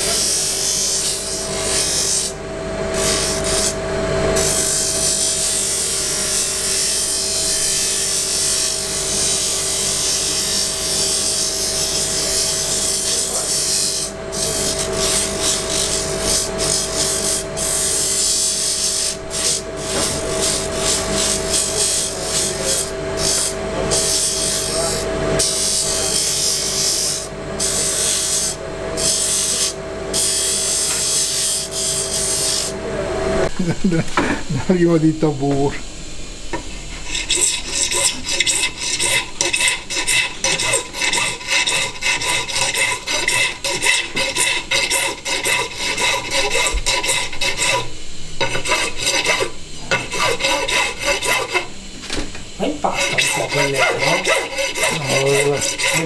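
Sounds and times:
bench sander motor humming: 0.0 - 56.0
hiss of wood being sanded: 48.5 - 51.7, 52.9 - 56.0.

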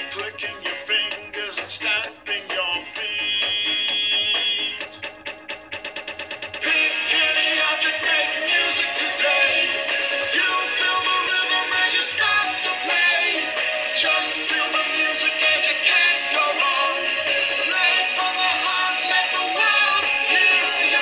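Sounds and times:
person singing: 0.0 - 5.0, 6.6 - 21.0
backing music with steady beat: 0.0 - 21.0.

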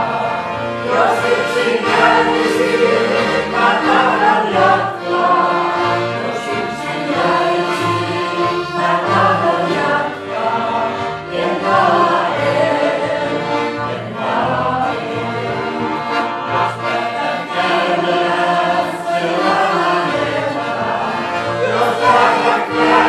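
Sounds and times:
group singing a hymn: 0.0 - 23.0.

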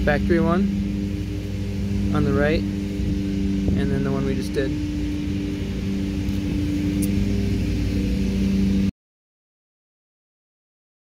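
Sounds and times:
machine humming: 0.0 - 8.9.

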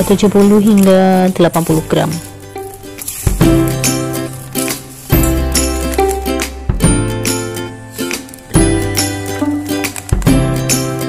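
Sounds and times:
plucked melody: 0.0 - 11.0.

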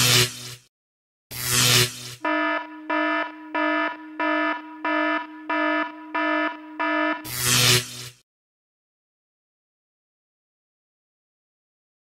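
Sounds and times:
electronic alarm beeps: 2.2 - 8.1.

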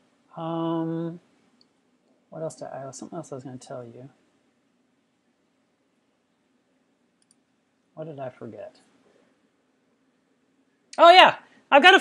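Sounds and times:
faint high clicks: 7.2 - 7.5.

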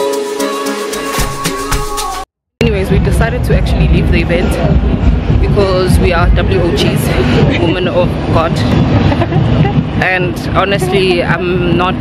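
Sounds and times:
woman talking: 2.6 - 8.8, 9.6 - 12.0
loud low rumble: 2.6 - 12.0.

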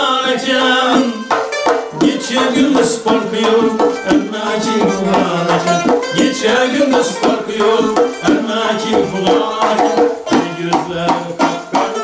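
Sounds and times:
frame drums struck in rhythm: 0.0 - 12.0
man singing: 0.0 - 12.0
plucked lute notes: 0.3 - 12.0.

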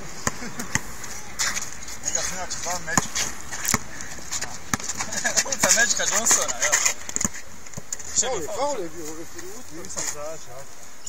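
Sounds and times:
faint voices: 0.0 - 10.9
basketball knocking on hard surface: 2.9 - 3.9.

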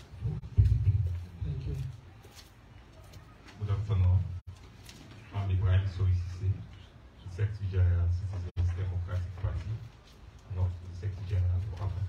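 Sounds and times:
man speaking into a microphone: 5.2 - 12.0.

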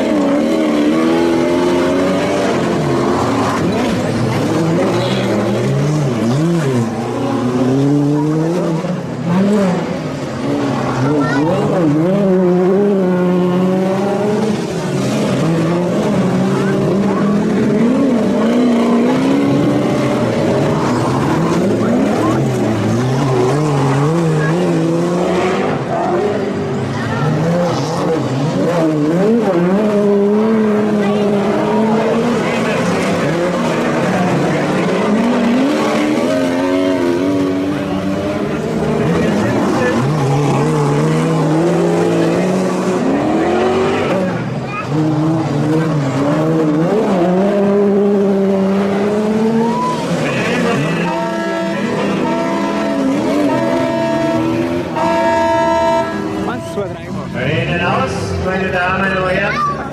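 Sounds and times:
racing car engines revving: 0.0 - 59.9.

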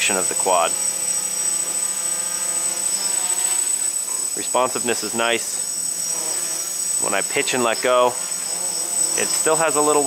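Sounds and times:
drone motors buzzing: 0.0 - 10.0
high-pitched motor whine: 0.0 - 10.0.

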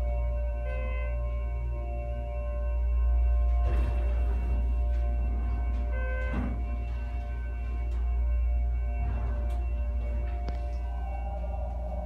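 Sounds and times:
elevator electronic chime: 0.0 - 12.0
hydraulic pump humming: 0.0 - 12.0.

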